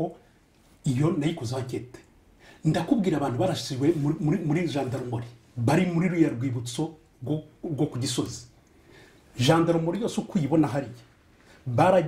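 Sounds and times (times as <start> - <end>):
man speaking: 0.0 - 0.2, 0.8 - 8.5, 9.4 - 12.0.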